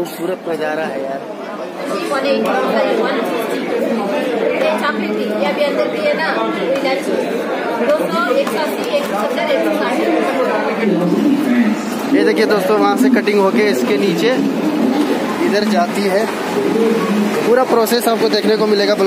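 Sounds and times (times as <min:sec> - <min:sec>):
people talking at once: 0:00.0 - 0:19.0.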